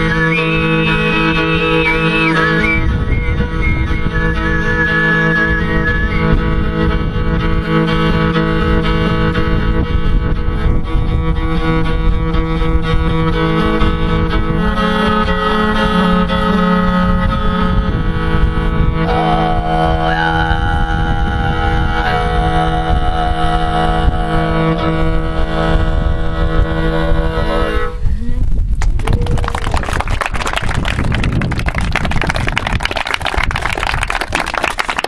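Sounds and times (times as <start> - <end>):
throat singing with overtone whistle: 0.0 - 6.4
bowed string drone: 0.0 - 28.2
audience applauding: 28.8 - 35.0.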